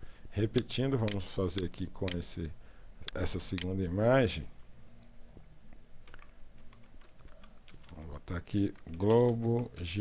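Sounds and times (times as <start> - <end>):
faint typing on keyboard: 0.4 - 2.3, 5.0 - 10.0.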